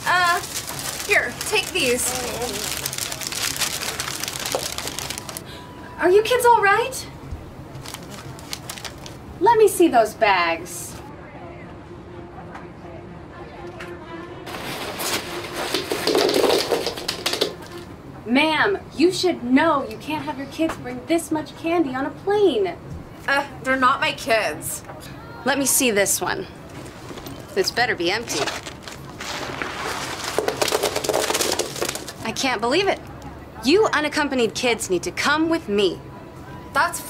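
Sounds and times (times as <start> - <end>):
backpack rustling and crinkling: 0.0 - 5.4, 7.8 - 9.2, 28.2 - 32.2
wrapped candy pouring out: 0.0 - 5.4, 7.8 - 9.2, 14.5 - 17.8, 28.2 - 32.2
quiet background music: 0.0 - 37.0.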